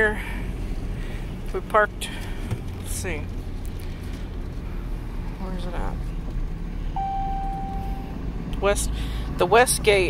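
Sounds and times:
steady beep: 7.0 - 8.2.

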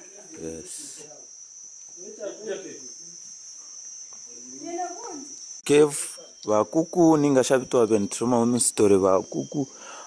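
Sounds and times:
insects trilling: 0.0 - 10.0.

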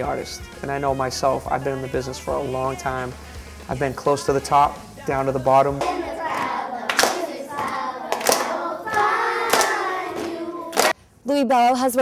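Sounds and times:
children singing together: 5.4 - 11.0
sharp hand claps: 5.7 - 11.0.

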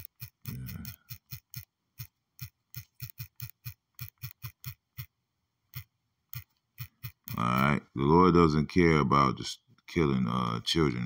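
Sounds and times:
smartphone keyboard typing clicks: 0.0 - 5.1, 5.8 - 7.4.

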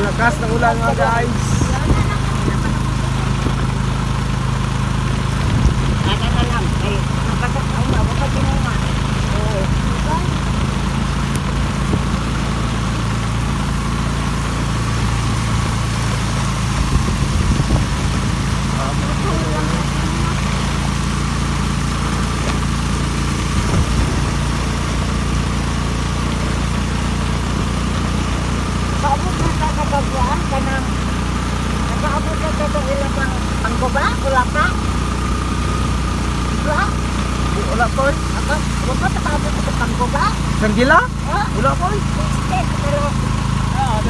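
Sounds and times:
heavy rain and wind hiss: 0.0 - 44.0
vehicle engine humming: 0.0 - 44.0.

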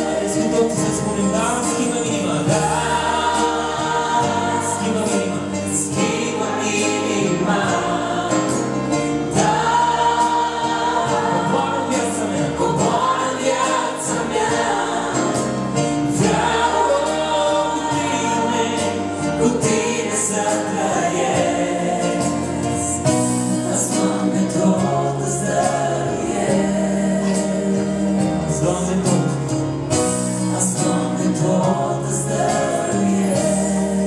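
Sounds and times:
electric keyboard accompaniment: 0.0 - 34.0.

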